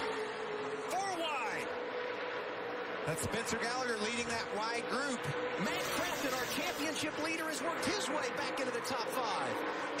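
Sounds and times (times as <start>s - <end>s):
race truck engines droning: 0.0s - 10.0s.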